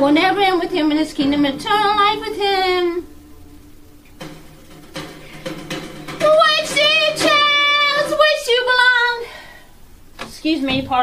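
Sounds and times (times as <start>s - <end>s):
woman singing in high voice: 0.0s - 3.1s, 6.2s - 9.4s.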